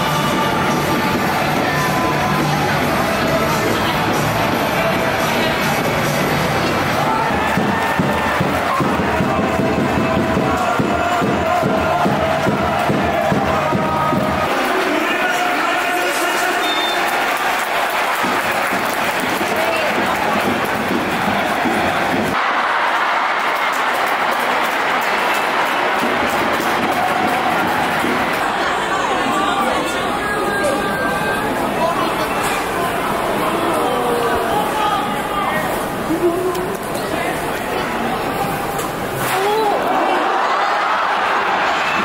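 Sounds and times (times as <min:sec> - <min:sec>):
music: 0:00.0 - 0:14.8, 0:17.0 - 0:22.4, 0:23.9 - 0:28.4
stadium crowd singing and chanting: 0:00.0 - 0:42.0.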